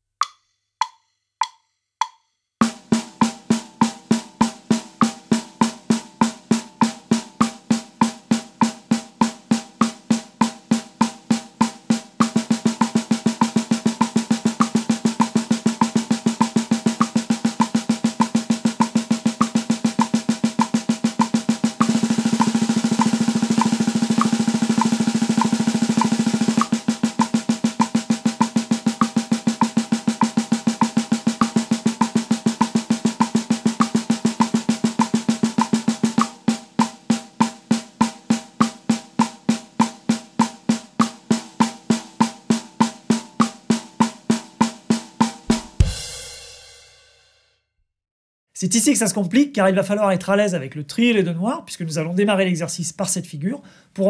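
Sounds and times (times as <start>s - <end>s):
snare drum played with sticks: 0.0s - 47.0s
metronome click: 0.2s - 2.2s, 17.0s - 28.0s, 35.0s - 37.0s.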